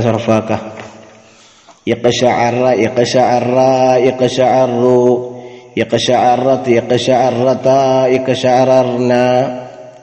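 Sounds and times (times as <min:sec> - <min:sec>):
man chanting sing-song recitation: 0:00.0 - 0:01.0, 0:01.7 - 0:10.0.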